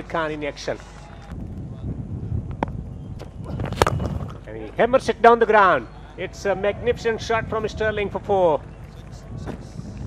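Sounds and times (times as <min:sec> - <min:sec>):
cricket bat striking ball: 0:02.6 - 0:04.5.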